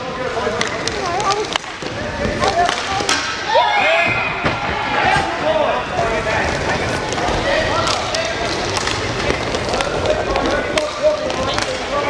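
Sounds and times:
sticks clacking on puck and floor: 0:00.4 - 0:03.4, 0:06.6 - 0:12.0.

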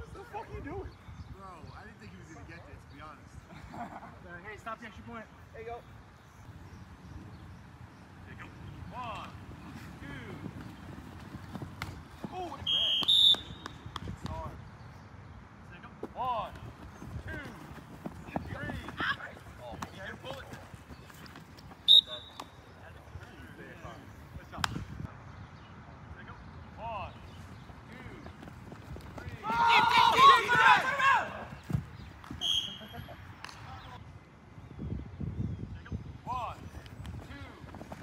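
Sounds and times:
players calling out: 0:08.2 - 0:14.5, 0:16.0 - 0:24.6, 0:26.8 - 0:34.0
people shouting together: 0:29.4 - 0:31.4.

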